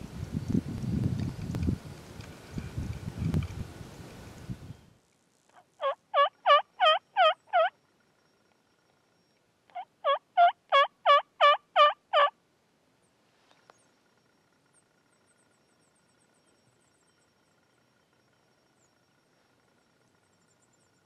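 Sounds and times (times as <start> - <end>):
turkey yelping: 5.8 - 7.7, 9.7 - 12.3.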